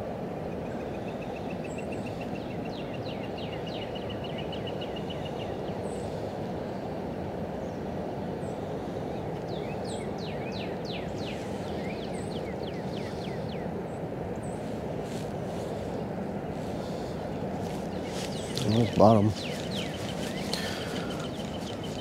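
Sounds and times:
low rushing background noise: 0.0 - 22.0
songbirds singing: 0.2 - 22.0.

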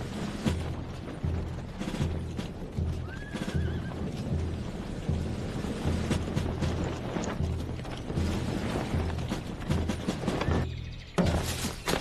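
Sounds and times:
rhythmic low thuds: 0.0 - 12.0
horse whinnying: 3.0 - 4.0.

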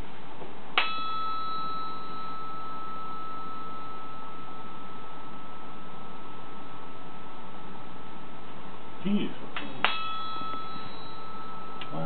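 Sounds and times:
brass bar clang and ringing: 0.8 - 7.4, 9.8 - 12.0.

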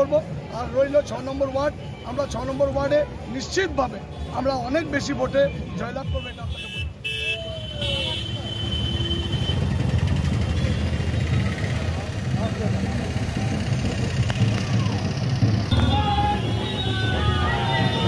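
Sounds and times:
street traffic: 0.0 - 18.0
car engine rumbling: 9.8 - 18.0.

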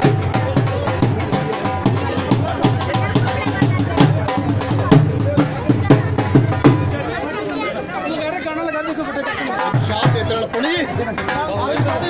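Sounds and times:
music playing: 0.0 - 7.2
drum beat: 0.0 - 7.4, 9.6 - 12.0
voices chattering: 0.0 - 12.0.

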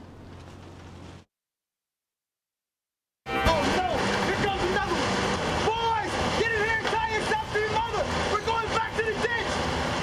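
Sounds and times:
steady rushing noise: 3.3 - 10.0.

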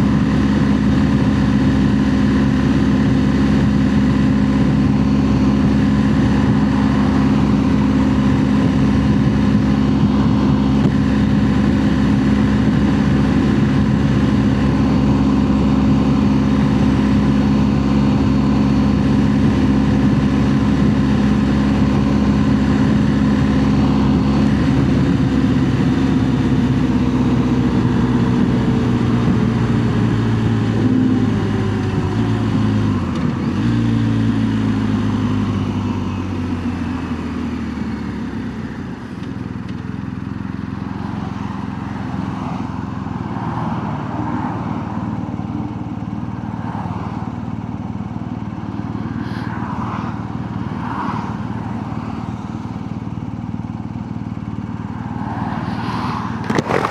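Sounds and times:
motorcycle engine running: 0.0 - 56.9.

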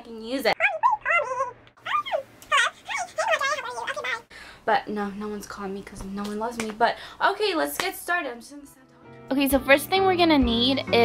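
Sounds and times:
woman squealing excitedly: 0.8 - 4.3.

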